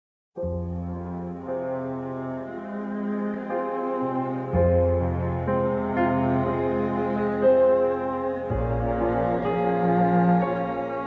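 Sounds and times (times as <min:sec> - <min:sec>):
orchestral music with low chords: 0:00.4 - 0:11.0.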